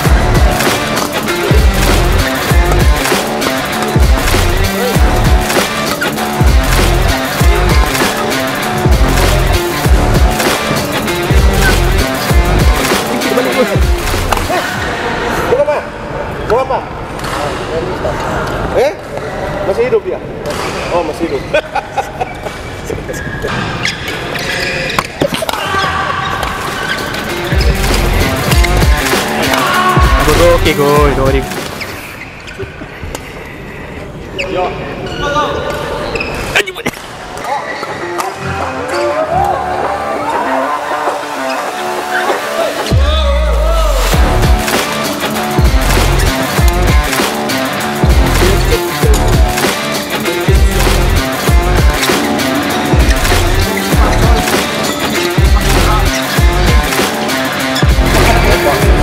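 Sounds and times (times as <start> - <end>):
music with pulsing beat: 0.0 - 14.5, 27.3 - 31.4, 42.7 - 59.0
shoes squeaking on court floor: 21.1 - 29.6, 31.5 - 33.4, 34.3 - 40.0, 51.4 - 58.8
voices: 33.9 - 59.0.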